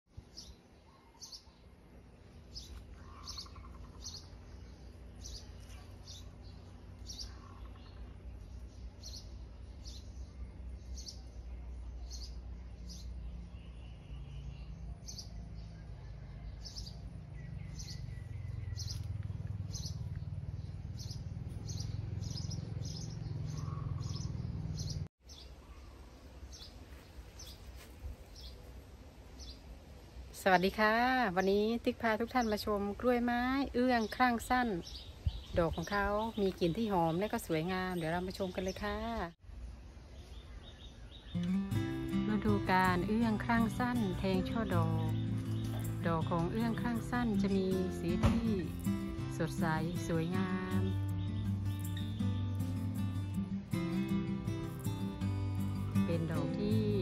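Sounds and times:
small bird chirping: 0:02.3 - 0:28.6, 0:40.1 - 0:41.6, 0:42.7 - 0:53.4.

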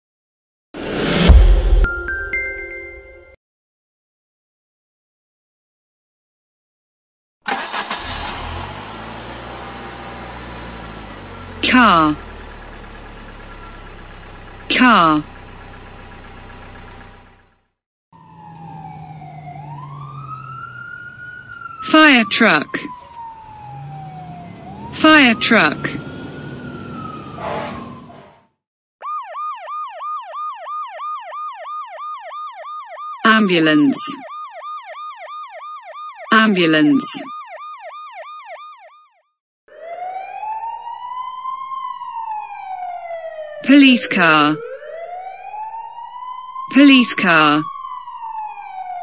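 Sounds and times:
car engine running: 0:07.5 - 0:21.8
fire truck siren wailing: 0:07.5 - 0:49.0
low engine rumble: 0:08.8 - 0:17.6.

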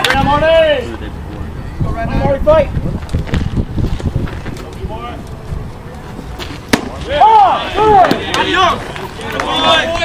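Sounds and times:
players and spectators yelling: 0:07.0 - 0:10.0.

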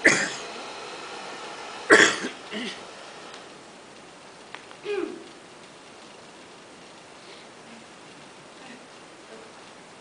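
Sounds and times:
room background: 0:00.0 - 0:10.0
short loud vocal bursts: 0:04.8 - 0:05.2.

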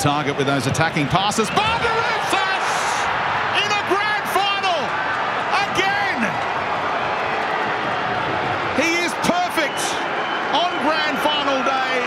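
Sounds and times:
stadium crowd noise: 0:00.0 - 0:12.0
commentator speaking: 0:05.5 - 0:06.3, 0:08.8 - 0:12.0.

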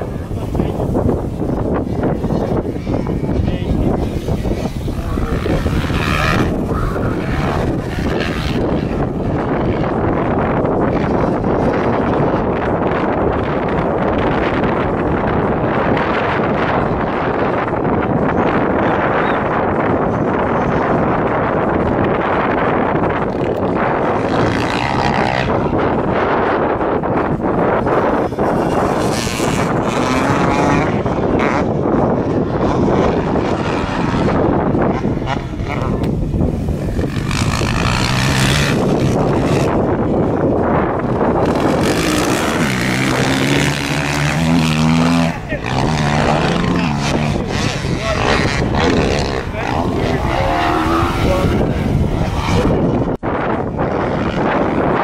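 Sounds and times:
motocross bike engines revving: 0:00.0 - 0:55.0
wind noise on microphone: 0:00.0 - 0:55.0.

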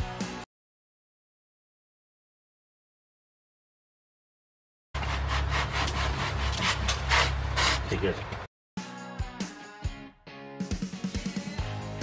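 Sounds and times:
dog paws scratching soil: 0:05.0 - 0:08.3.

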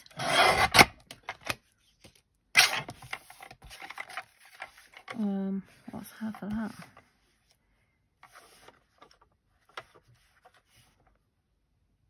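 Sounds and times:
paper rustling: 0:01.8 - 0:05.2, 0:08.2 - 0:11.2.

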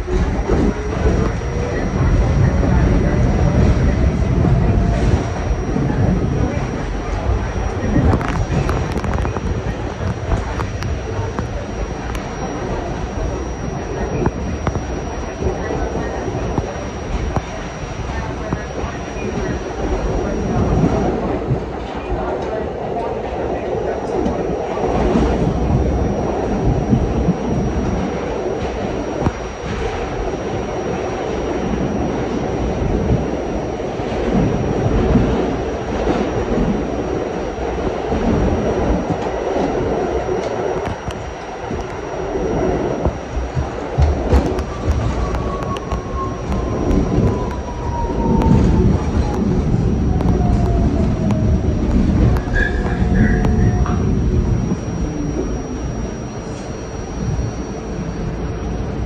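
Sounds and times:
subway train wheels rumbling on rail: 0:00.0 - 0:59.0
train whine falling in pitch: 0:00.0 - 0:59.0.

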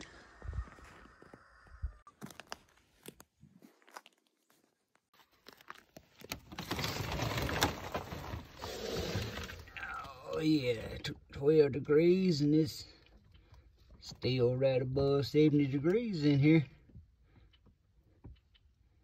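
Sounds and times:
faint clicks and crunches: 0:02.1 - 0:10.4
frozen plastic sheeting crinkling: 0:02.2 - 0:10.0.

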